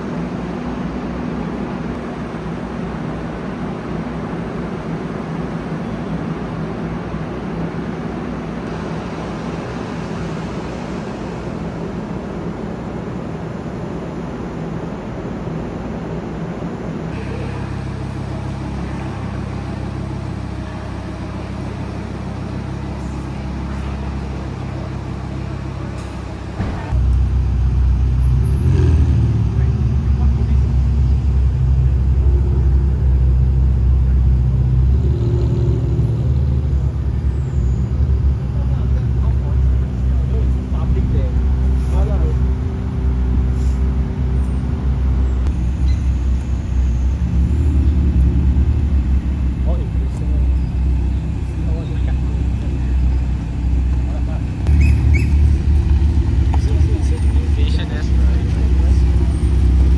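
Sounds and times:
car engines rumbling in traffic: 0.0 - 59.9
people talking: 29.4 - 33.4, 38.4 - 42.7, 49.6 - 54.7, 56.4 - 59.5.

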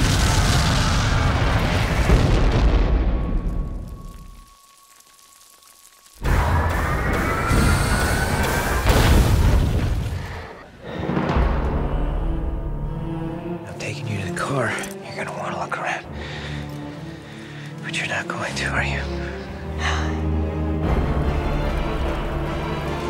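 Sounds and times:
dramatic trailer music: 6.2 - 23.0.

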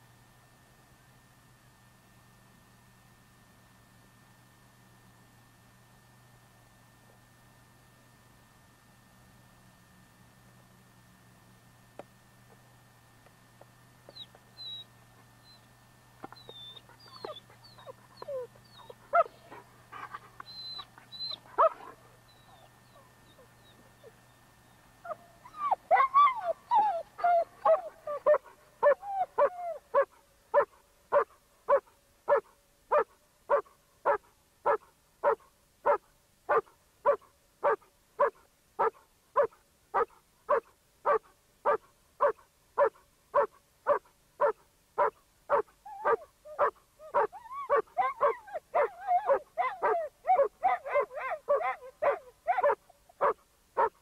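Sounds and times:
dog whining yelps: 14.1 - 15.6, 16.2 - 24.1, 25.0 - 54.0
bird chirps: 14.1 - 15.7
dog barking: 18.8 - 19.6, 21.2 - 22.0, 27.4 - 54.0.

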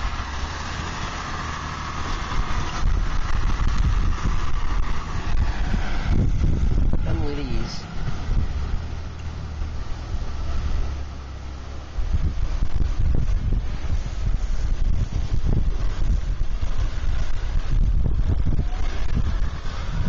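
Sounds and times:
car engine rumbling: 0.0 - 20.0
wind buffeting microphone: 0.0 - 20.0.

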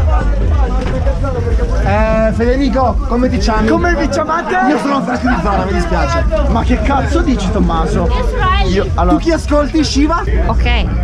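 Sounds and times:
steady low rumble: 0.0 - 11.0
young men talking: 0.0 - 11.0.

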